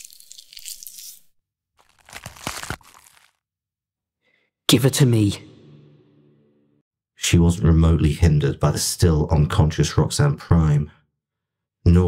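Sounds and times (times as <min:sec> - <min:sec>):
foley crunching and tearing: 0:01.8 - 0:03.4.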